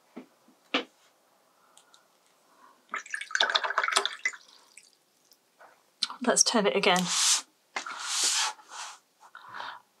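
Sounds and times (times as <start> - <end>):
board scraping across tabletop: 7.0 - 9.0.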